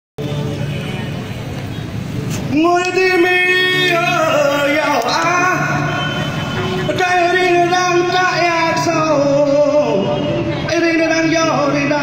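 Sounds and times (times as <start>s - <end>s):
muffled concert music rumble: 0.2s - 12.0s.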